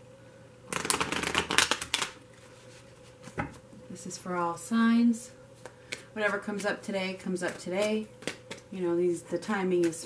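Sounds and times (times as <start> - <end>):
cards being shuffled: 0.7 - 3.5, 7.4 - 8.7.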